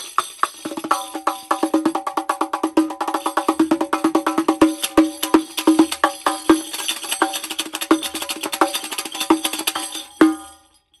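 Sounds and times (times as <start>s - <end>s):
tambourine played fast: 0.0s - 11.0s.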